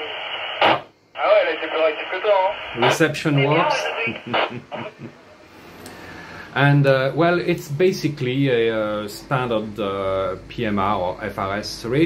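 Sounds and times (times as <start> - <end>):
radio static hiss: 0.0 - 5.1
voice through radio speaker: 1.2 - 5.0.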